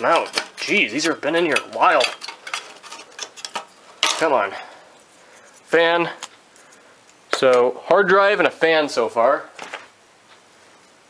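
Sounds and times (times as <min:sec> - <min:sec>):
plastic rattling against metal: 0:00.0 - 0:04.4
handling rustle: 0:00.0 - 0:05.8.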